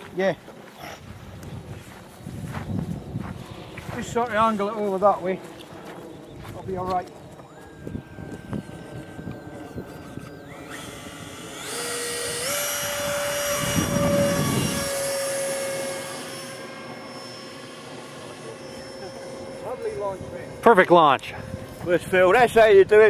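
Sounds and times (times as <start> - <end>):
electric fan motor whining: 0.0 - 23.0.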